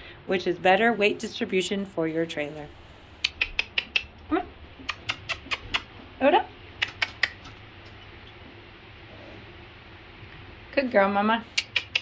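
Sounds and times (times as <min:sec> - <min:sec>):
tongue clicks: 0:03.2 - 0:04.2, 0:04.8 - 0:05.9, 0:06.8 - 0:07.6, 0:11.5 - 0:12.0.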